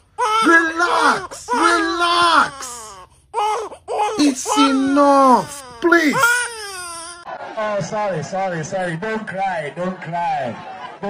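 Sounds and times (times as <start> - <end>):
woman wailing: 0.4 - 2.9, 4.2 - 6.8.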